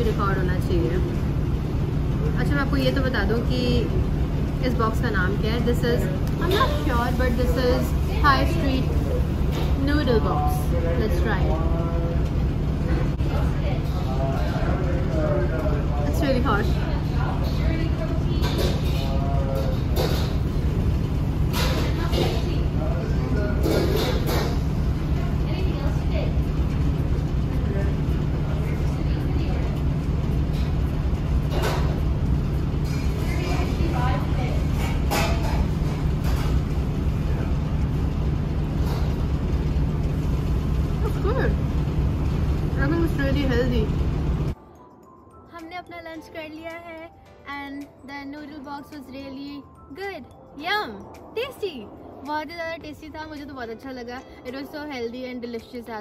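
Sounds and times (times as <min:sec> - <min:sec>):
faint background music: 0:00.0 - 0:56.0
steady low hum: 0:00.0 - 0:56.0.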